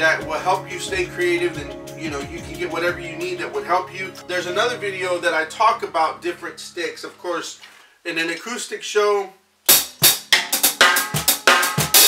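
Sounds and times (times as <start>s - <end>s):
snare and hi-hat strokes: 9.7s - 12.0s.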